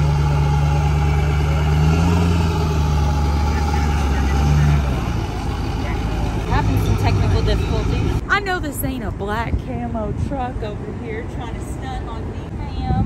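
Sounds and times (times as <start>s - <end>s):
pickup truck engine idling: 0.0s - 8.3s.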